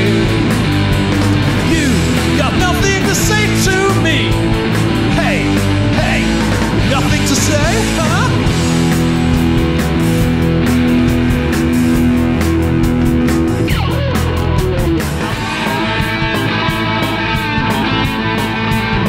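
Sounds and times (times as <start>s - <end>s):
rock band playing: 0.0s - 19.0s.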